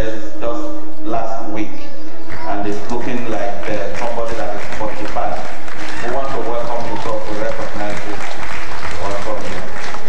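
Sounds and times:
man talking over microphone: 0:00.0 - 0:09.7
audience clapping: 0:03.5 - 0:10.0.

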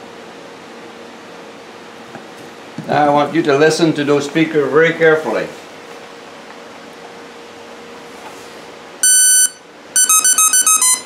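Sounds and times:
loud electronic beep: 0:09.0 - 0:11.0.

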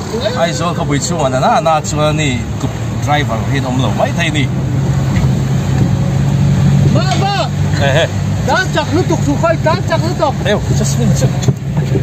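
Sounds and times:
men talking: 0:00.0 - 0:05.2, 0:06.3 - 0:11.9
car engine and road drone: 0:00.0 - 0:12.0.

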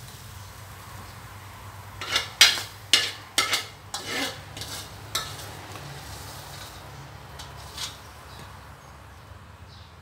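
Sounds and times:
metal spatula scraping wok: 0:02.0 - 0:08.5.

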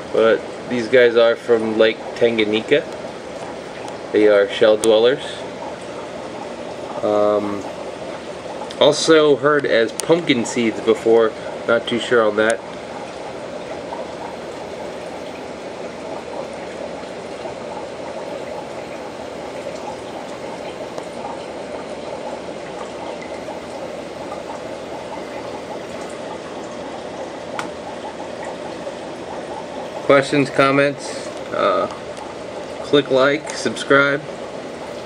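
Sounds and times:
aquarium filter water trickling: 0:00.0 - 0:35.0.

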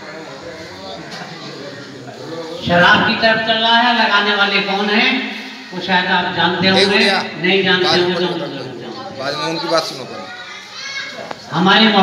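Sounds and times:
man speaking through a microphone: 0:00.0 - 0:10.3
quiet crowd voices: 0:00.0 - 0:12.0.

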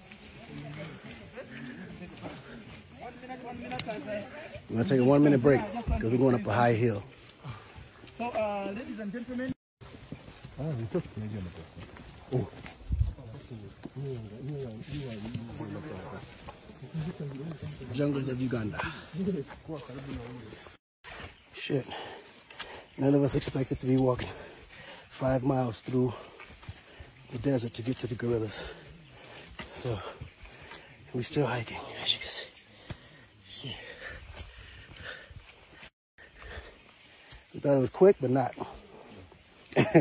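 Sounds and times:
footfalls on forest trail: 0:07.0 - 0:40.0.

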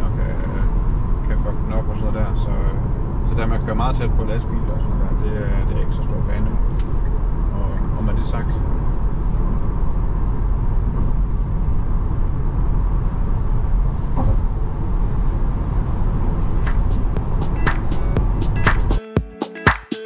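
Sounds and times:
road and tyre rumble: 0:00.0 - 0:19.0
music with percussive clicks: 0:16.5 - 0:20.0.

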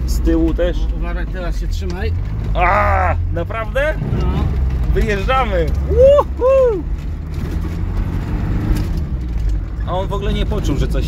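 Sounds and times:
car engine running: 0:00.0 - 0:11.0
rumble of tyres and body: 0:00.0 - 0:11.0.

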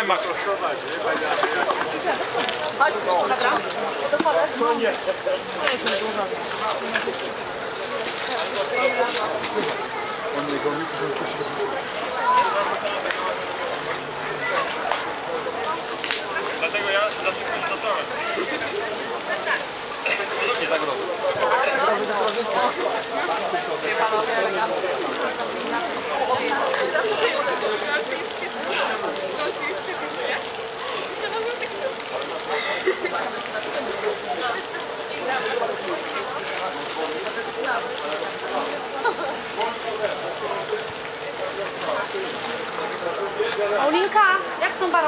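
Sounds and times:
indistinct conversation: 0:00.0 - 0:45.0.

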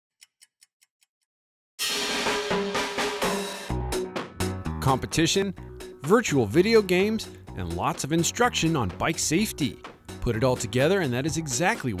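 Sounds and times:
music with drums: 0:01.8 - 0:12.0.

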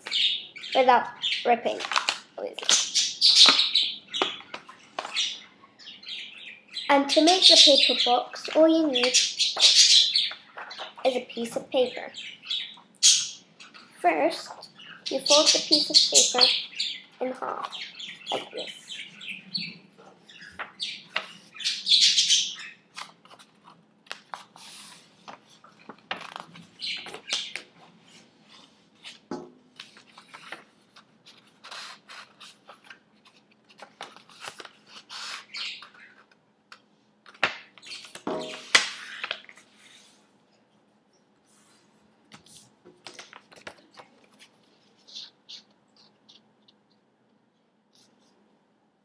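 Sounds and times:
paper rustling and crinkling: 0:01.7 - 0:03.6, 0:22.9 - 0:36.4, 0:41.6 - 0:46.4
budgerigars chirping: 0:02.7 - 0:04.5, 0:08.9 - 0:10.8, 0:12.0 - 0:13.5, 0:14.8 - 0:22.8.

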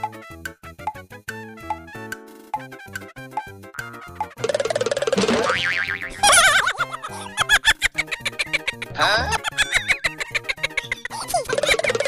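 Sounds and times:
comedy background music: 0:00.0 - 0:12.0
cartoon boing: 0:03.8 - 0:06.2.

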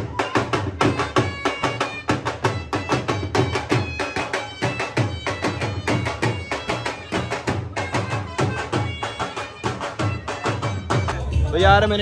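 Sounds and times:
dhol drum strokes: 0:00.0 - 0:12.0
piping wind instrument melody: 0:00.0 - 0:12.0.

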